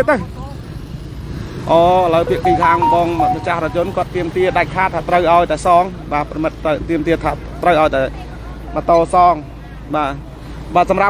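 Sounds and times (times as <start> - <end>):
person speaking: 2.2 - 4.2.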